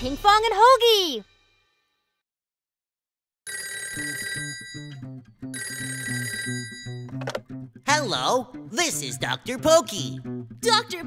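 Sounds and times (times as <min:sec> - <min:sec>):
cartoon telephone ringing: 0:03.5 - 0:07.2.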